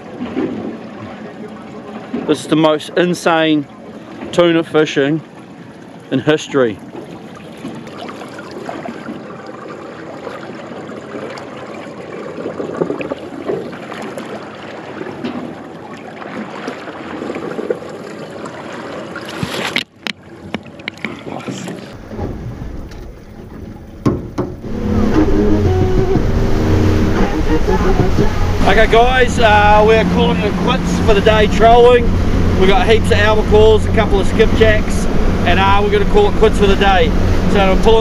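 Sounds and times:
outboard engine humming: 0:00.0 - 0:38.0
water rushing past hull: 0:00.0 - 0:38.0
water sloshing against boat: 0:00.0 - 0:38.0.

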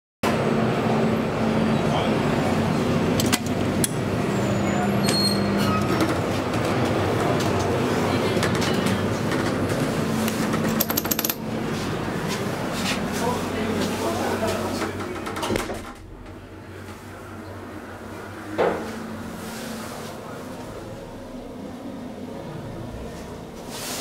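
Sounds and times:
railway station low hum: 0:00.2 - 0:24.0.

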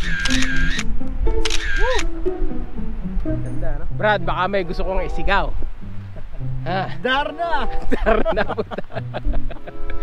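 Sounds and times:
camera shutter clicks: 0:00.0 - 0:02.1
background music: 0:00.0 - 0:10.0.

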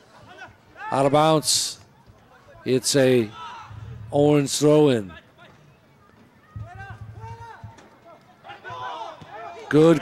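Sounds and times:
distant shouting voices: 0:05.1 - 0:10.0.

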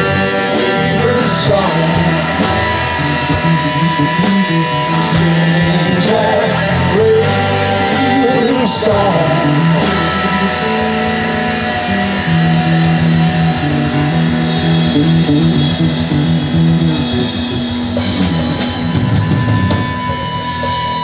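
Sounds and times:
bass guitar: 0:00.0 - 0:21.0
drum kit: 0:00.0 - 0:21.0
electric guitars: 0:00.0 - 0:21.0.

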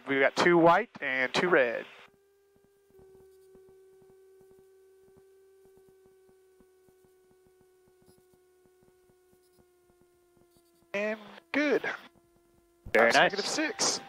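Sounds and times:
faint steady hum: 0:00.0 - 0:14.0.

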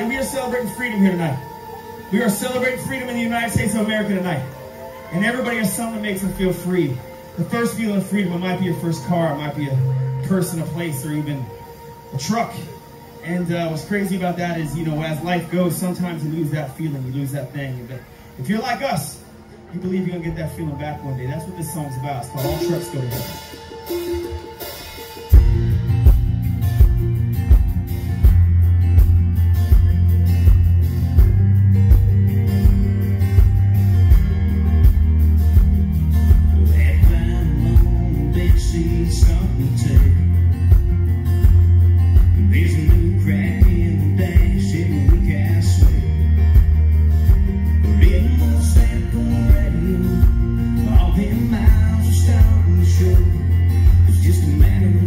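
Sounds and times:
held bass notes: 0:00.0 - 0:55.0
live country band playing: 0:00.0 - 0:55.0
strummed guitars: 0:00.0 - 0:55.0
kick drum beat: 0:25.4 - 0:38.0
male lead vocal: 0:36.5 - 0:40.6, 0:42.2 - 0:46.4, 0:47.8 - 0:55.0.

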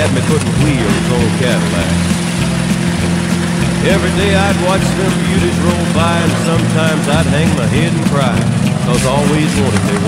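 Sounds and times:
country song playing: 0:00.0 - 0:10.0
truck engine running: 0:00.0 - 0:10.0.

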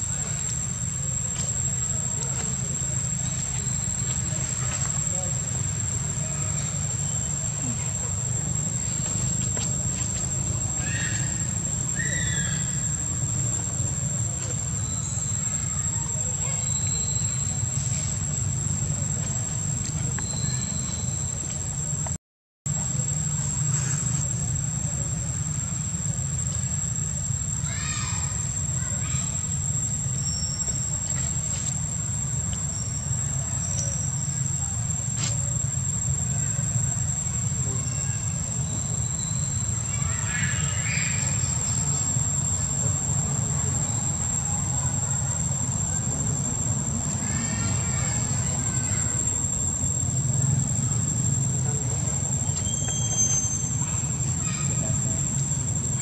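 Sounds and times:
high insect drone: 0:00.0 - 0:22.1, 0:22.7 - 0:56.0
short high-pitched calls: 0:52.6 - 0:53.8.

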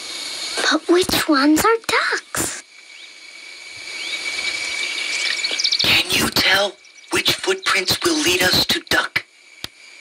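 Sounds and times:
steady hiss with high tone: 0:00.0 - 0:10.0
faint bird chirp: 0:03.8 - 0:09.1.

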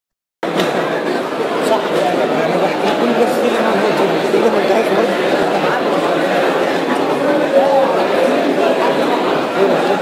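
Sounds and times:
students chattering: 0:00.5 - 0:10.0.

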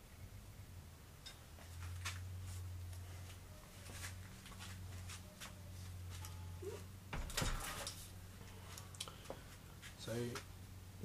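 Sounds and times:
objects clattering: 0:07.2 - 0:08.1.

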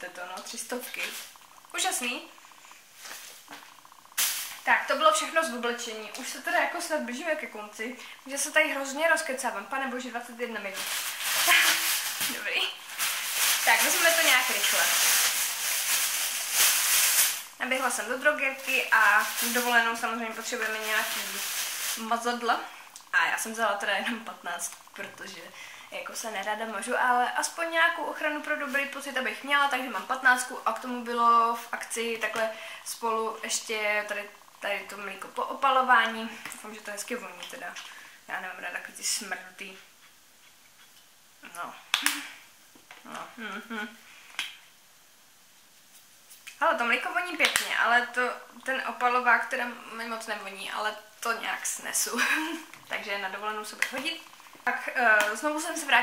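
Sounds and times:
packaging rustling: 0:10.6 - 0:22.2
woman humming and murmuring: 0:43.0 - 0:44.0.

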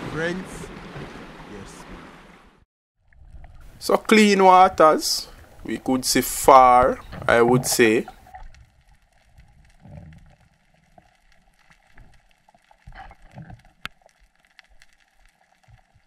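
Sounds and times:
underwater water swishes: 0:00.0 - 0:16.0
small underwater clicks: 0:07.0 - 0:16.0.

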